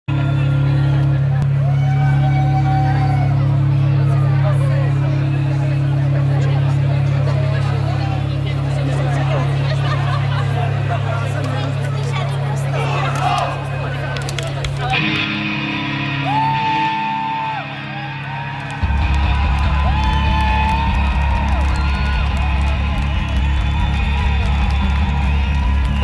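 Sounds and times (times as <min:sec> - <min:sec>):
crowd whooping and cheering: 0:00.1 - 0:04.6, 0:12.6 - 0:26.0
rock music over pa: 0:14.9 - 0:26.0.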